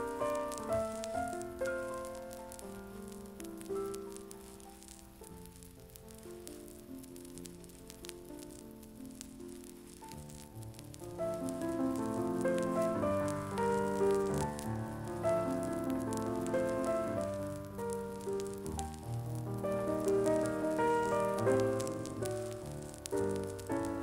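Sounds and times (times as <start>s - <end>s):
piano music: 0.0s - 24.0s
record crackle and hiss: 0.0s - 24.0s.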